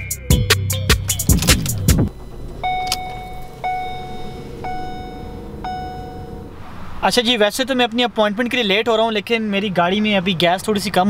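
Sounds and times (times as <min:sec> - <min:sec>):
car engine idling: 0:00.0 - 0:11.0
dashboard warning chime: 0:00.9 - 0:07.3.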